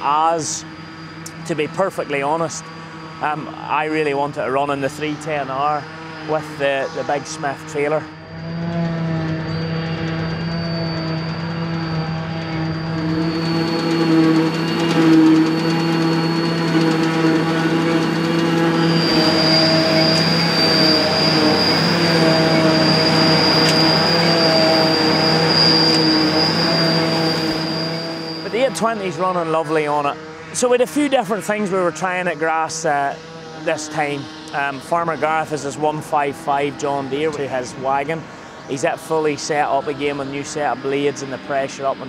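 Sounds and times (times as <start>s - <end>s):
constant high whine: 0.0s - 42.0s
tractor engine and drum drone: 0.0s - 42.0s.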